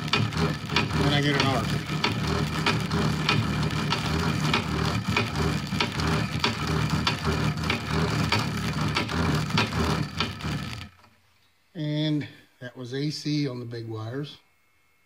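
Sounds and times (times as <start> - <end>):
motor grinding: 0.0 - 11.2
wires arcing and crackling: 0.0 - 11.2.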